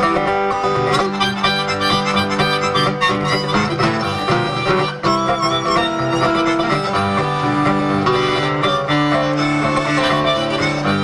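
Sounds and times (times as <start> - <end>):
acoustic guitars playing: 0.0 - 11.0.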